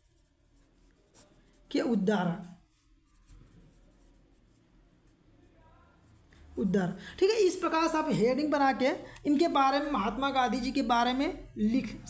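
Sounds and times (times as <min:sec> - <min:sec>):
pencil scratching on paper: 0:00.0 - 0:05.2.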